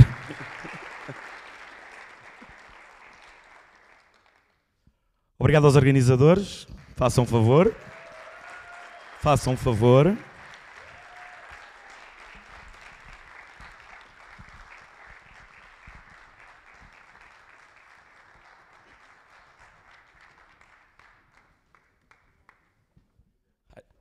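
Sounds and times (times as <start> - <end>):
audience applause: 0.0 - 4.5, 6.8 - 22.6.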